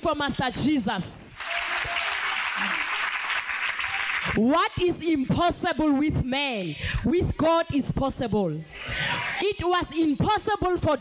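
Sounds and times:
crowd clapping: 1.4 - 4.4.

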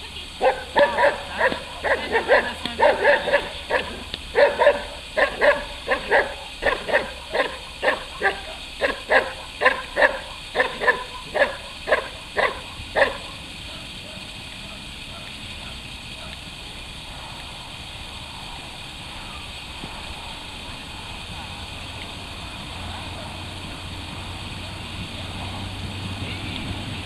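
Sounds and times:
dog barking hard: 0.4 - 16.3.

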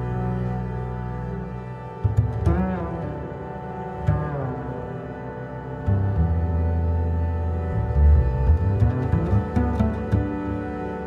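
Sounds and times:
deep bass notes: 0.0 - 11.0
slow dark instrumental music: 0.0 - 11.0.

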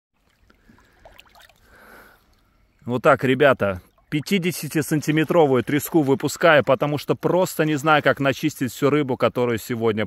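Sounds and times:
water drips and plops: 0.2 - 2.8, 3.8 - 6.7
water trickling over stones: 0.2 - 8.6.

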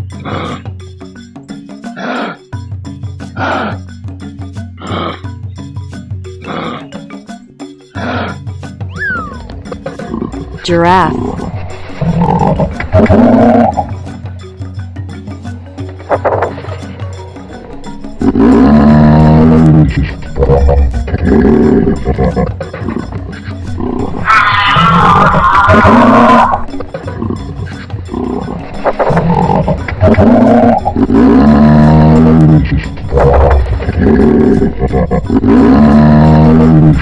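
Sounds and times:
background music: 0.0 - 37.0
giraffe calling: 4.8 - 14.2, 16.0 - 37.0.

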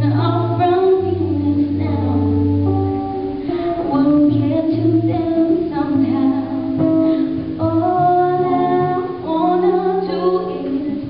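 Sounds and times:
guitar playing: 0.0 - 11.0
woman singing slow melody: 0.0 - 11.0.

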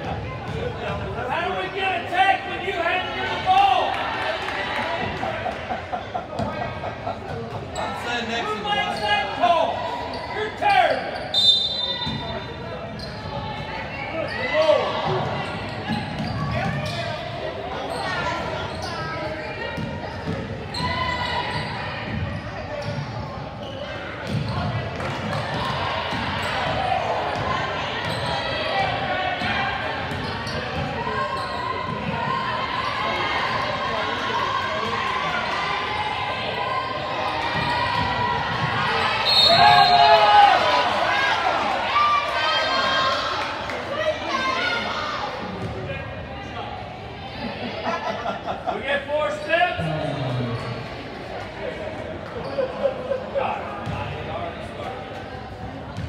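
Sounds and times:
echoing indistinct voices: 40.5 - 56.0.

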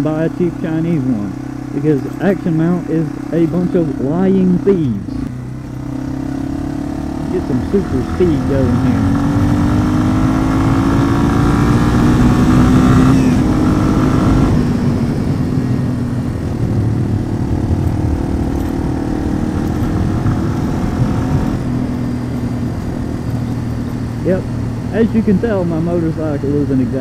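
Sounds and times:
motorcycle engine accelerating: 0.0 - 27.0
wind noise rumble: 9.0 - 24.9.

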